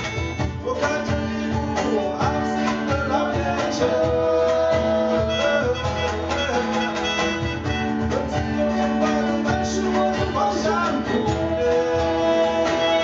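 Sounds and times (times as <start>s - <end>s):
small band playing a slow song: 0.0s - 13.0s.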